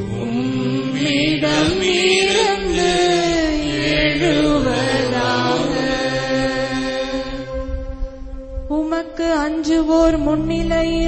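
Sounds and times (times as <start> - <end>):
slow sung psalm: 0.0 - 11.0
steady musical accompaniment: 0.0 - 11.0.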